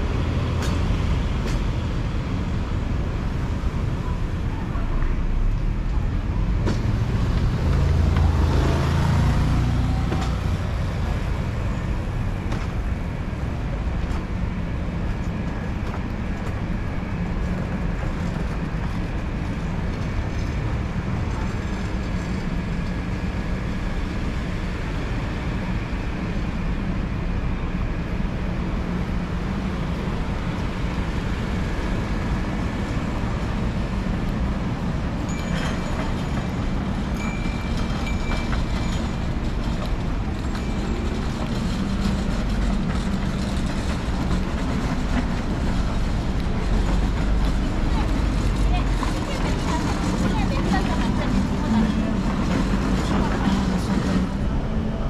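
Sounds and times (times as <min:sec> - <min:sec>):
road traffic hum: 0:00.0 - 0:55.0.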